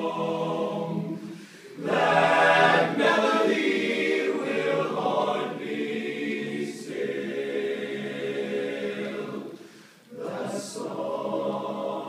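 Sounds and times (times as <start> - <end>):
men's chorus singing a cappella: 0.0 - 12.0.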